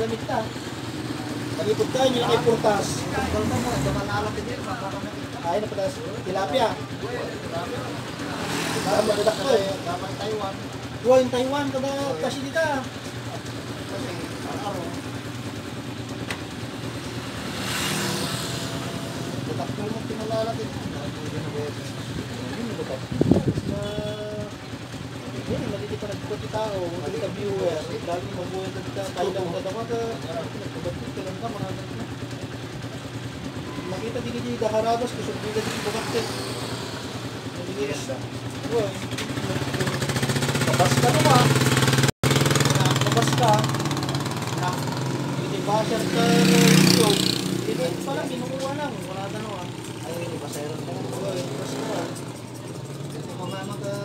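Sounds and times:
motor engine running: 0.0 - 54.0.

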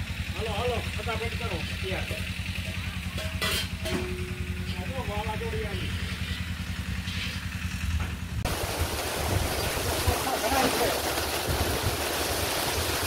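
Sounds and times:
low engine hum: 0.0 - 13.0
torrential rain pouring: 8.4 - 13.0.

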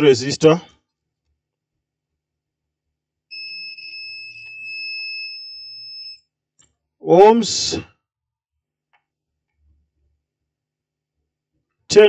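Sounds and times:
multimeter continuity beep: 3.3 - 6.3.

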